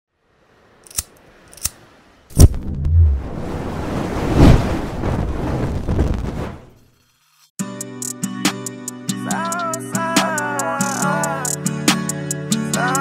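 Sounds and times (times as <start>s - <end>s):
rushing whoosh of flame: 2.3s - 6.8s.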